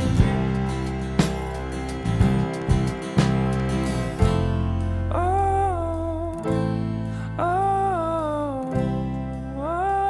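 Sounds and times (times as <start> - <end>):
person singing: 0.0 - 3.6, 5.0 - 10.0
acoustic guitar chords: 0.0 - 10.0.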